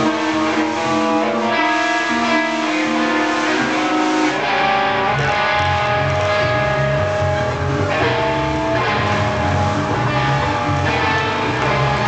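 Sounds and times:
electric guitar sustained notes: 0.0 - 12.0
rock band playing loud: 0.0 - 12.0.

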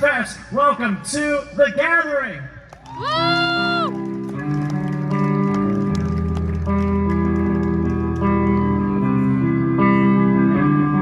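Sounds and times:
live band playing through pa: 3.0 - 11.0
guitar notes: 3.6 - 11.0.

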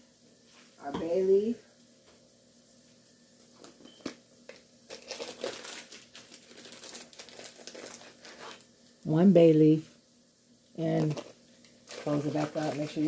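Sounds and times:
packet crinkling and rustling: 3.6 - 9.0, 10.8 - 13.0.

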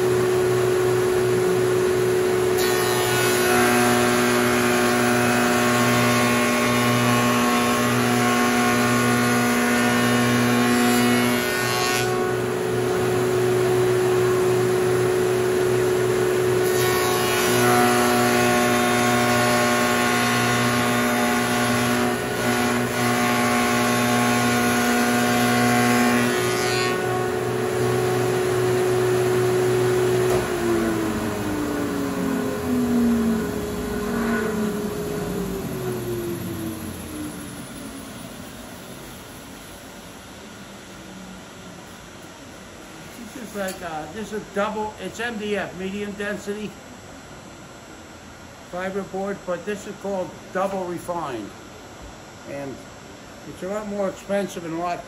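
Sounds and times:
shaper cutting wood: 2.5 - 12.4, 16.6 - 36.6
machine hum winding down: 27.2 - 41.6
shaper motor spinning down: 28.8 - 38.6.

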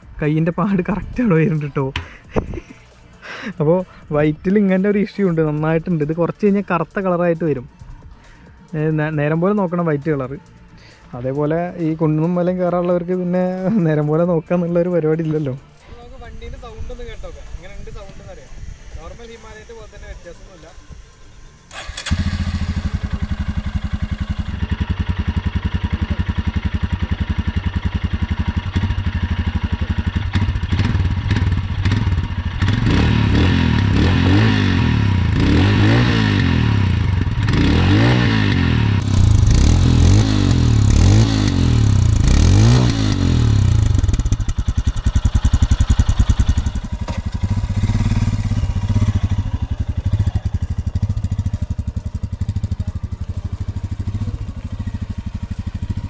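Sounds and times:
motorcycle engine idling and revving: 0.0 - 56.0.

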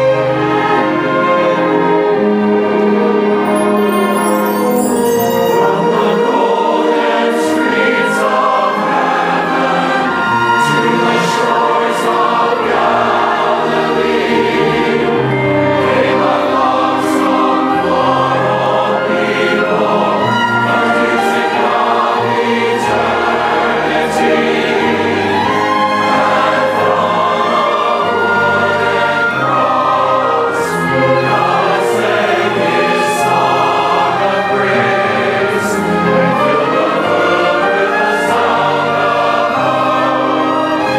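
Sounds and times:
choir singing a hymn: 0.0 - 40.9
orchestral accompaniment: 0.0 - 40.9.

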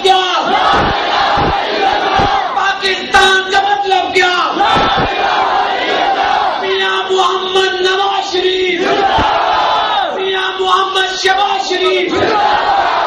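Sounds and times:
crowd of men shouting in unison: 0.3 - 2.6, 4.5 - 6.8, 8.8 - 10.2, 12.0 - 13.0.

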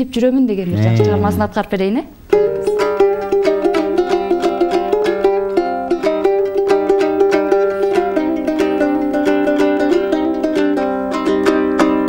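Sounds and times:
plucked lute melody: 0.8 - 1.6, 2.3 - 12.0.

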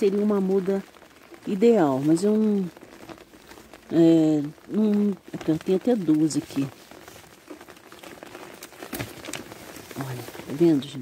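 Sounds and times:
leaves rustling: 0.0 - 11.0
light rain pattering: 0.0 - 11.0.

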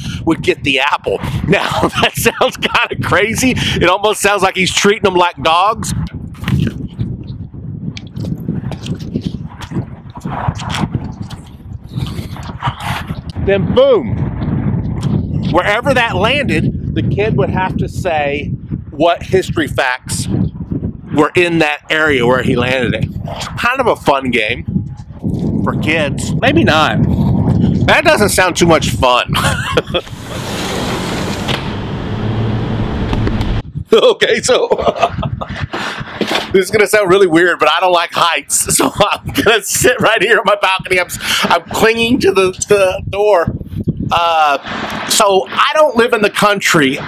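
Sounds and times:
wind rumble on microphone: 0.0 - 47.0
person crunching an apple: 6.4 - 6.9, 10.6 - 12.5
low rumble of traffic: 30.0 - 33.6.

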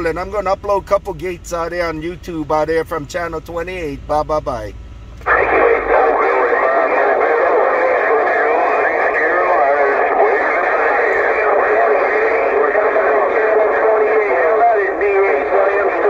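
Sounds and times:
radio voices talking over one another: 5.2 - 16.0.

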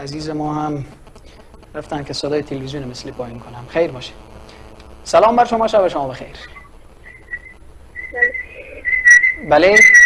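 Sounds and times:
high feedback whistling tone: 6.1 - 10.0.

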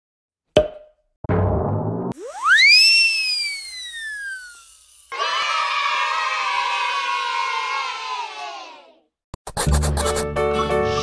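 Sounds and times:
swooping whistling tone: 2.2 - 5.1
children cheering: 2.3 - 9.0.

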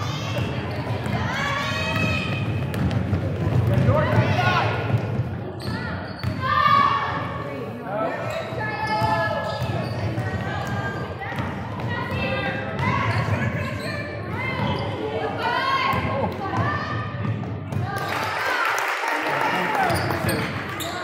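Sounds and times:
basketball bouncing on hardwood floor: 1.9 - 5.3.

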